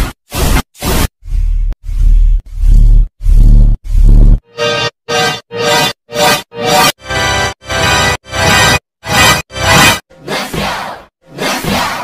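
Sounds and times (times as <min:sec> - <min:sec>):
distorted rumbling blasts: 0:01.2 - 0:04.4.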